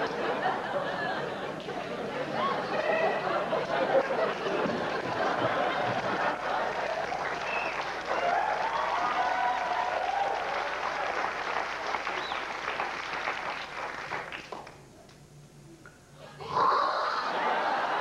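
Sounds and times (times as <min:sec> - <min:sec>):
audience applauding: 0:02.4 - 0:14.8.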